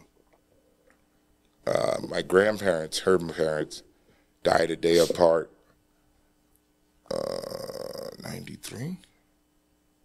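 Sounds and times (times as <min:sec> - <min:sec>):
man's creaky vocal sound: 0:07.1 - 0:08.2.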